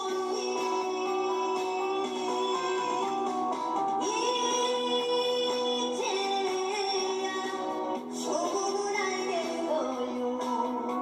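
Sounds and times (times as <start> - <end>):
woman singing into microphone: 0.0 - 3.2, 4.0 - 11.0.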